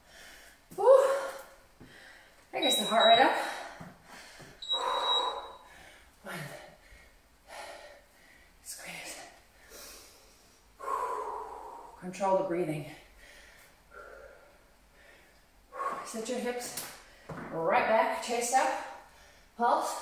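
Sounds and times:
woman breathing hard: 0:00.0 - 0:02.5, 0:03.3 - 0:12.0, 0:13.0 - 0:16.2.

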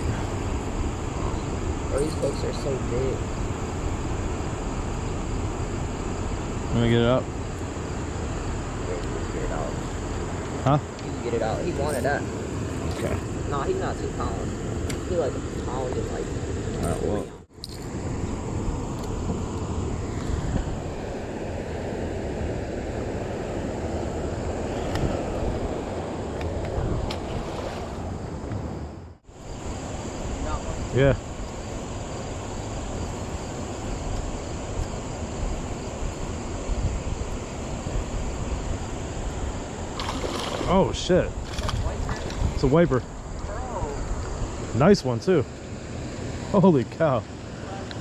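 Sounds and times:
wind buffeting microphone: 0:18.1 - 0:45.4.

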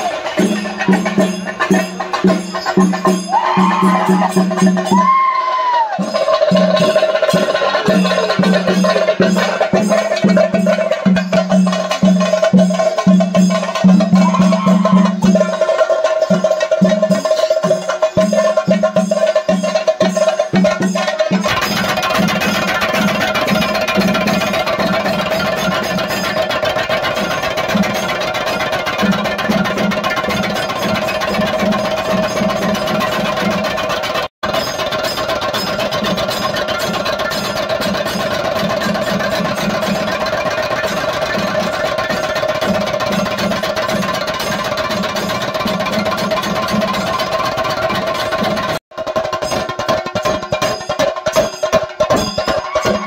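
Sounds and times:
fast drumming: 0:00.0 - 0:53.0.

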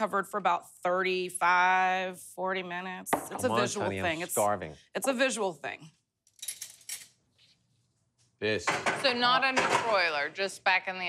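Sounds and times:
metal cutlery clinking: 0:06.3 - 0:07.2.

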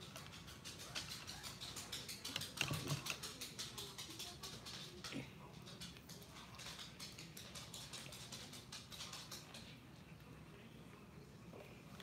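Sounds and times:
paintbrushes rattling in plastic cup: 0:00.0 - 0:04.7.

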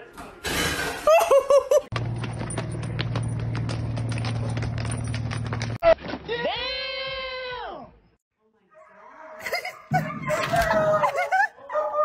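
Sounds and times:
dog paws clicking on stone: 0:01.9 - 0:05.8.

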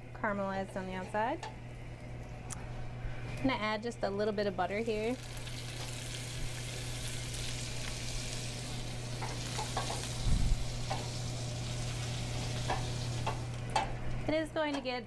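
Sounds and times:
fish fillets sizzling in a skillet: 0:05.2 - 0:13.4.

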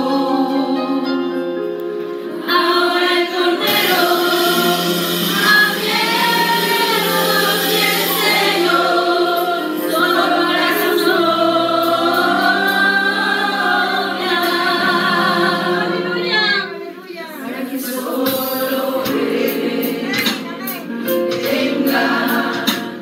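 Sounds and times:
women singing into microphones: 0:02.4 - 0:20.4.

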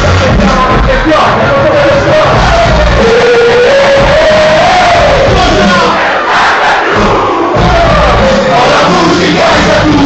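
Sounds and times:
rap track beat: 0:00.0 - 0:06.0, 0:06.8 - 0:10.0
crowd shouting and singing along: 0:00.0 - 0:10.0.

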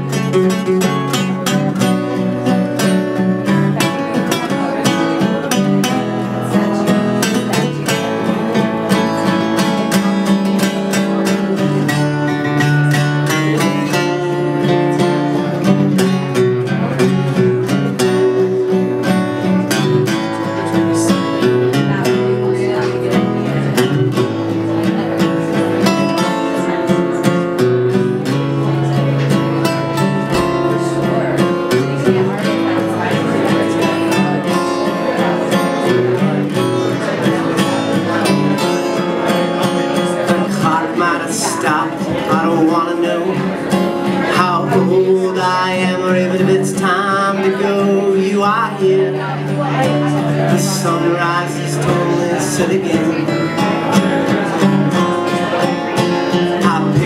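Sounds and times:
acoustic guitars strumming: 0:00.0 - 0:57.0.

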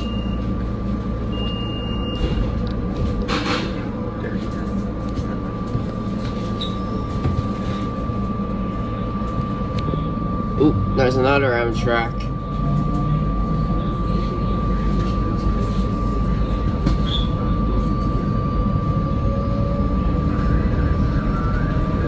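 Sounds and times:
thin high whine: 0:03.3 - 0:21.7.

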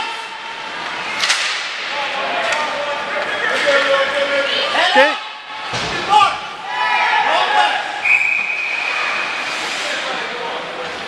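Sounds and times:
people shouting: 0:04.7 - 0:08.0.

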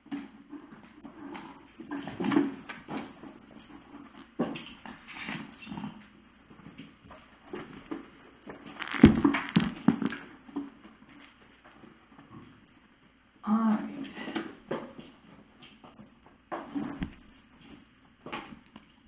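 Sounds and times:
high rattling sound: 0:01.0 - 0:06.8, 0:07.5 - 0:10.5, 0:11.1 - 0:11.6, 0:16.8 - 0:18.1.

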